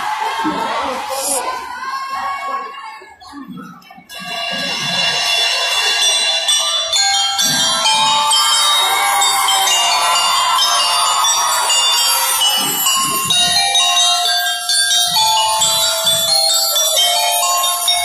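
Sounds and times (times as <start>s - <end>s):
bell lyres ringing melody: 4.1s - 18.0s.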